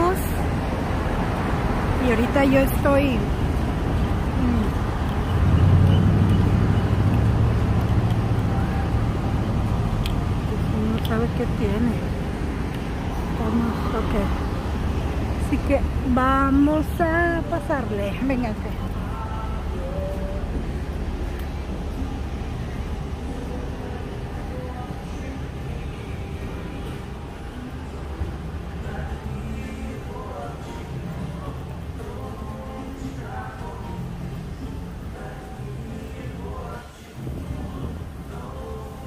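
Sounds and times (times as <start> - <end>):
city traffic rumble: 0.0 - 39.0
roadway noise: 0.0 - 39.0
vehicle engine drone: 0.0 - 39.0.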